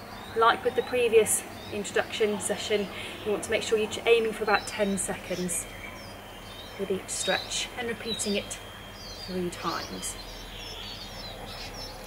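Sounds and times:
low outdoor hum: 0.0s - 12.0s
small birds chirping: 0.0s - 12.0s.

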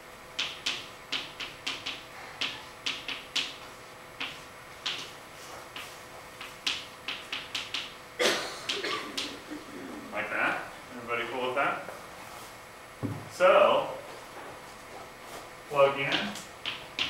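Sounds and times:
chalk tapping on blackboard: 0.4s - 8.0s.

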